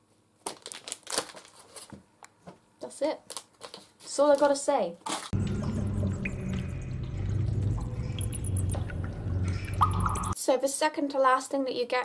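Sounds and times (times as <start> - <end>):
faint water drips: 5.4 - 10.4
low steady cave drone: 5.4 - 10.4.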